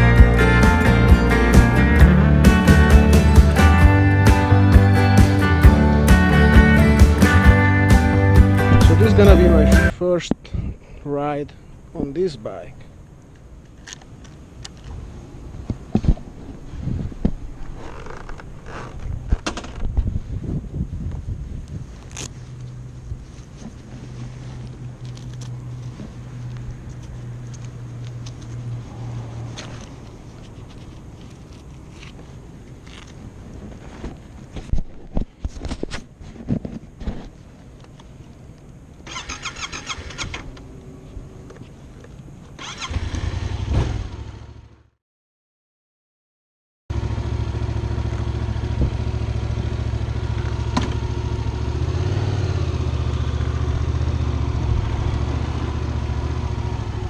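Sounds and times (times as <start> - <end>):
motorcycle engine running: 0.0 - 9.9, 46.9 - 57.0.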